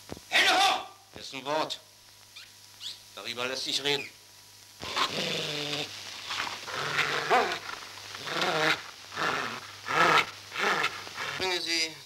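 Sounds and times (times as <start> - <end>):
steady low hum: 0.0 - 12.0
dog snarling and growling: 4.8 - 11.6.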